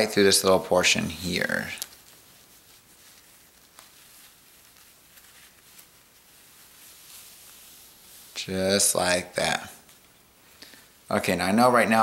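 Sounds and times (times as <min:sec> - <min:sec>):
necktie fabric rustling: 0:00.0 - 0:12.0.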